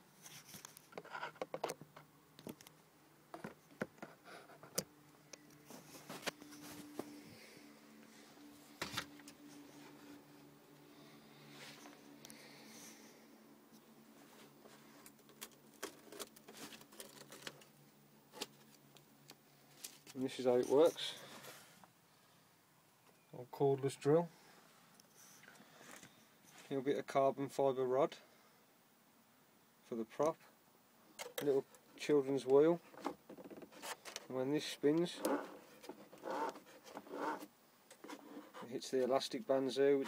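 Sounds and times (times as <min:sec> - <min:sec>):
faint low hum: 0:00.0 - 0:40.0
man speaking: 0:20.1 - 0:21.2, 0:23.4 - 0:24.3, 0:38.7 - 0:40.0.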